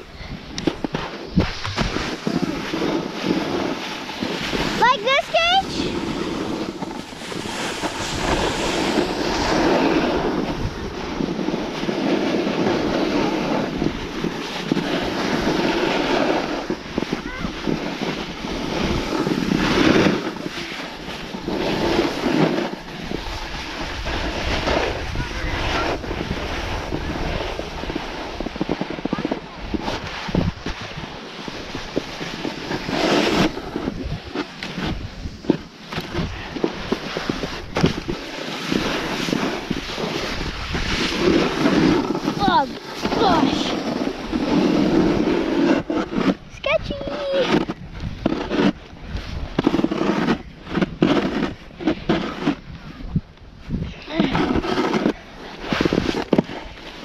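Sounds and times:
wind buffeting microphone: 0:00.0 - 0:56.9
snowboard scraping over snow: 0:00.0 - 0:57.0.

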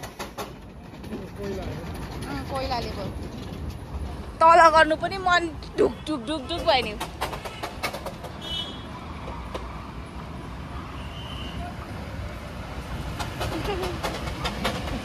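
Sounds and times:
sharp clicking of train: 0:00.0 - 0:09.9, 0:12.5 - 0:15.0
train rumble: 0:00.0 - 0:15.0.

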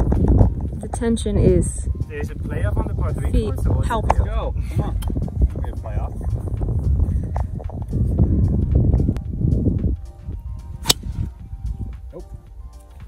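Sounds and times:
background music: 0:00.0 - 0:13.0
golf club striking ball: 0:10.8 - 0:11.4.

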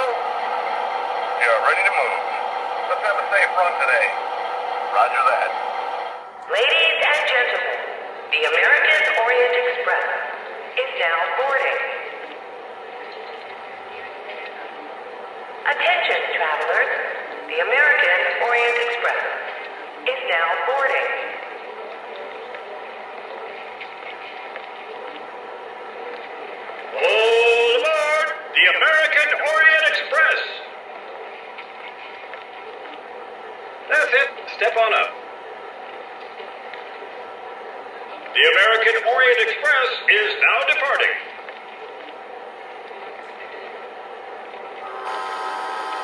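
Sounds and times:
model train electronic hum: 0:00.0 - 0:46.0.

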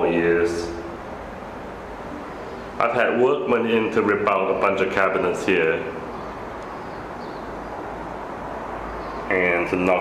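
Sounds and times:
low background rumble and hiss: 0:00.0 - 0:10.0.

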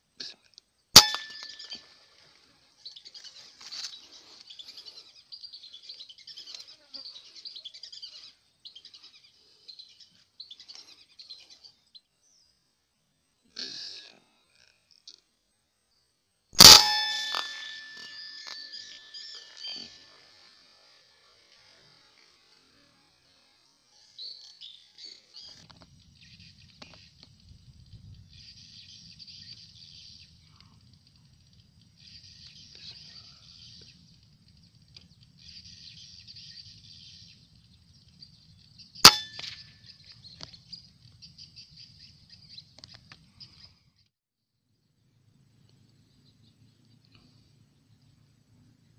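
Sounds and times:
loud rifle shot: 0:01.0 - 0:01.7, 0:16.6 - 0:18.6
ringing tone: 0:01.0 - 0:02.0, 0:16.6 - 0:20.0, 0:39.1 - 0:39.7
insects buzzing: 0:17.6 - 0:30.8.

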